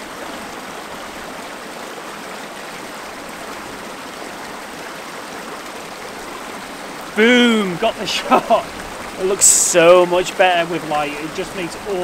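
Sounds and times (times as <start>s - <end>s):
stream rushing over rocks: 0.0s - 12.0s.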